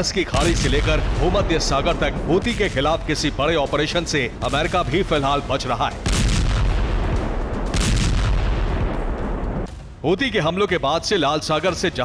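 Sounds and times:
deep rumbling blasts: 0:00.2 - 0:09.7.

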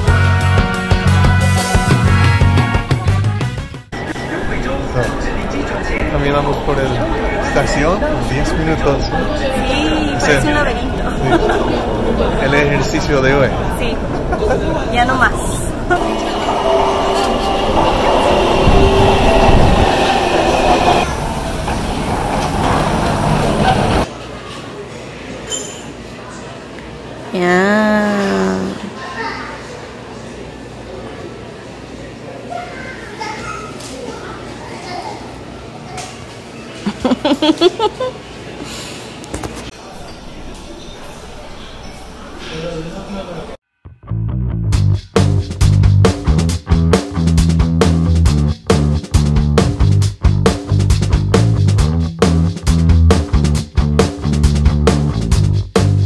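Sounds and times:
bass guitar: 0:00.0 - 0:03.9, 0:43.9 - 0:56.0
murmuring voices: 0:04.0 - 0:21.1, 0:26.2 - 0:43.6
train rumble with high whine: 0:13.4 - 0:24.1
drums steady beat: 0:44.7 - 0:56.0.

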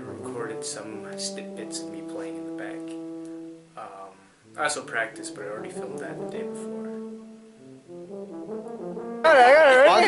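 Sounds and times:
brass instrument music: 0:00.0 - 0:10.0.

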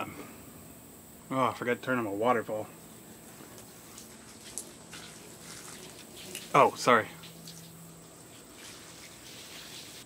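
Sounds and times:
water feature trickling: 0:02.1 - 0:10.0.

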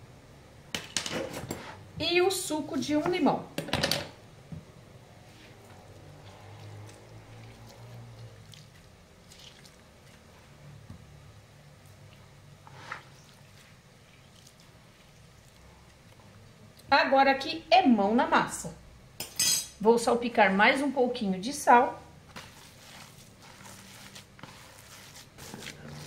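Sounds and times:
hand squeezing lime: 0:05.9 - 0:10.8, 0:11.9 - 0:16.5, 0:22.3 - 0:26.0
juice dripping into bowl: 0:06.2 - 0:10.5, 0:13.2 - 0:16.9.

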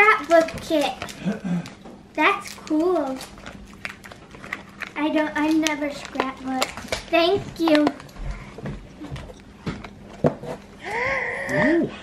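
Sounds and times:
packaged supplies clicking and rustling: 0:00.0 - 0:10.7
faint steady hum: 0:00.0 - 0:12.0.

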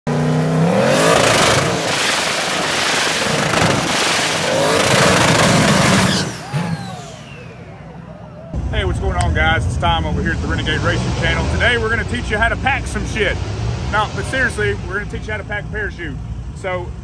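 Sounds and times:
car engine revving hard: 0:00.1 - 0:07.5, 0:09.9 - 0:15.1.

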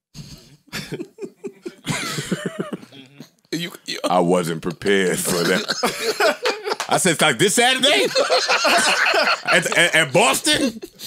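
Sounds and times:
men laughing: 0:00.7 - 0:03.2, 0:04.9 - 0:11.0.

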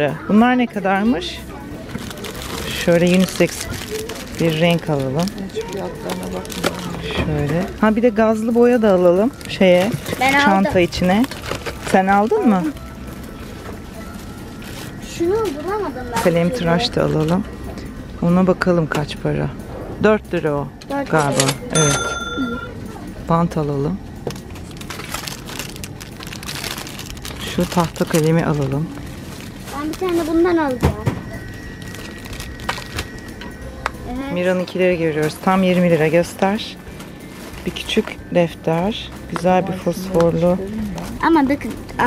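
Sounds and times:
faint supermarket hum: 0:00.0 - 0:42.0
plastic items clicking in wire cart: 0:01.9 - 0:07.7.

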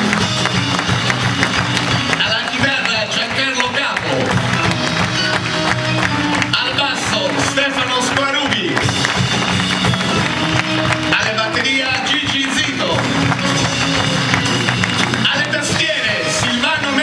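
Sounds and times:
drum kit: 0:00.0 - 0:17.0
keyboard: 0:00.0 - 0:17.0.

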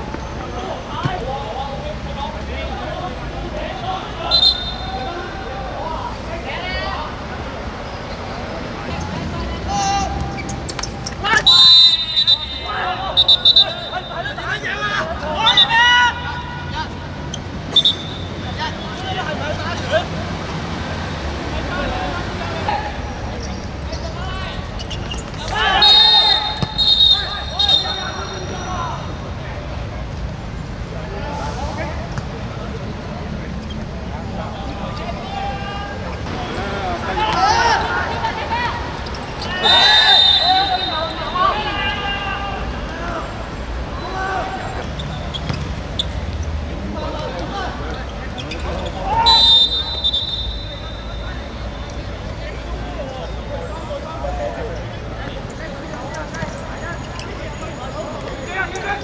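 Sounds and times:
players shouting: 0:00.0 - 0:07.3, 0:08.8 - 0:20.4, 0:21.0 - 0:29.9, 0:34.2 - 0:46.0, 0:46.7 - 0:51.8
referee whistle blast: 0:04.3 - 0:05.1, 0:11.3 - 0:14.2, 0:17.7 - 0:18.4, 0:25.7 - 0:29.0, 0:39.6 - 0:41.3, 0:49.1 - 0:51.7.

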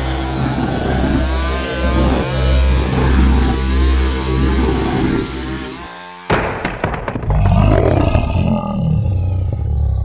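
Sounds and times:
deep creature roar: 0:07.2 - 0:10.0.

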